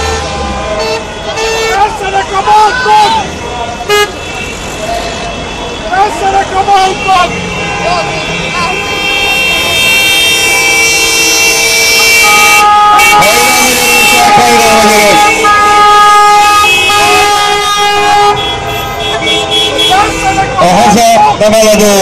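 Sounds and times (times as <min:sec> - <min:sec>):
voices shouting: 0:00.0 - 0:11.6, 0:12.2 - 0:22.0
car horns honking: 0:00.0 - 0:22.0.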